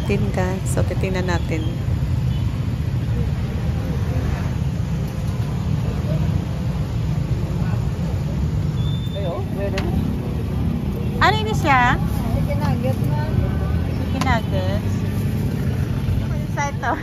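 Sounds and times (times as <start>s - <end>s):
low rumble of street traffic: 0.0s - 17.0s.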